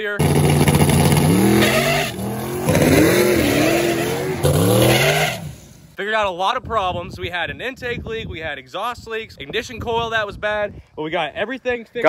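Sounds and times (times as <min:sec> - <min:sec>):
car engine revving: 0:00.2 - 0:05.8.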